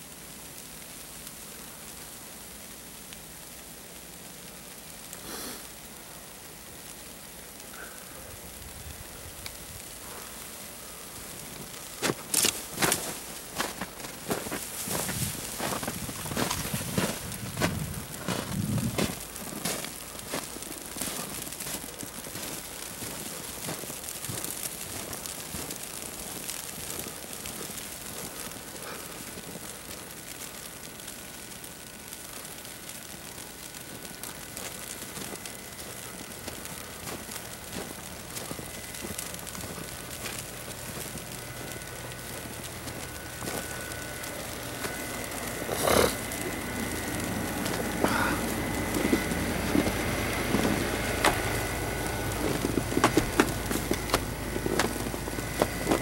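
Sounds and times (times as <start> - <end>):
footsteps in deep snow: 12.0 - 27.0.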